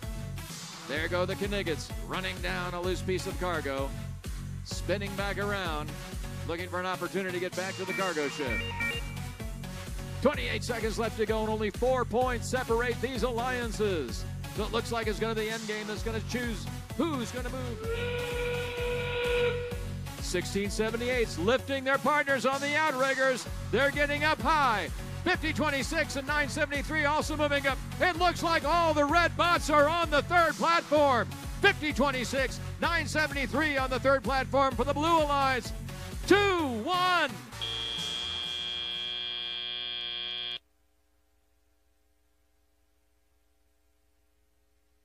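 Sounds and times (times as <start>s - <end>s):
whistle-like warning tone: 17.7s - 19.8s, 37.6s - 40.6s
harsh electronic buzzer: 37.6s - 40.6s.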